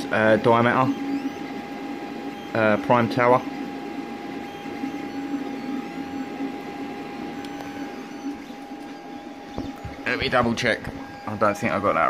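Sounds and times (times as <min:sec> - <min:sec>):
printer motors whirring: 0:00.0 - 0:12.0.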